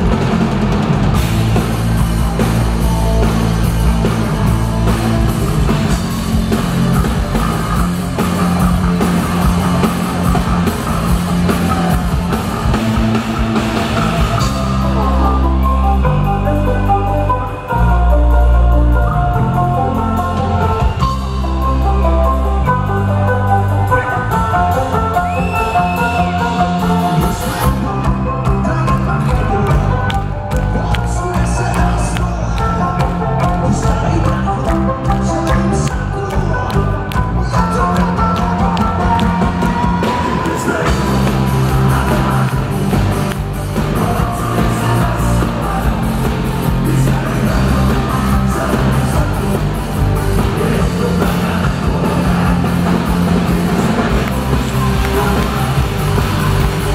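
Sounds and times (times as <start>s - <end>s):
rock band playing: 0.0s - 56.9s.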